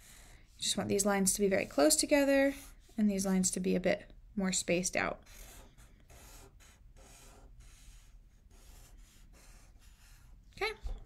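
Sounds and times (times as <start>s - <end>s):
felt-tip marker strokes on paper: 0.0s - 3.2s, 5.3s - 10.4s.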